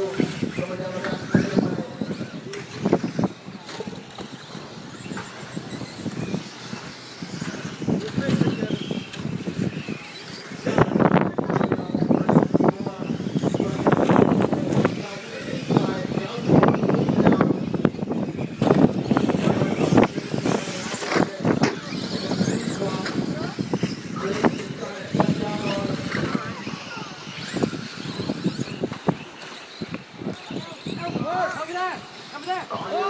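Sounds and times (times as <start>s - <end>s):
high motor whine: 0.0s - 33.0s
rc trucks rough mechanical noise: 0.0s - 33.0s.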